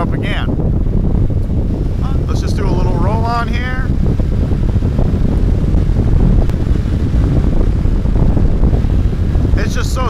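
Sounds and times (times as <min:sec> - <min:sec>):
heavy wind rush on microphone: 0:00.0 - 0:10.0
motorcycle engine accelerating: 0:03.6 - 0:09.6.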